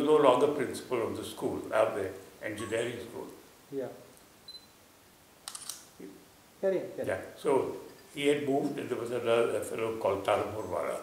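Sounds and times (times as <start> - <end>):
sharp light clicks: 5.4 - 5.9.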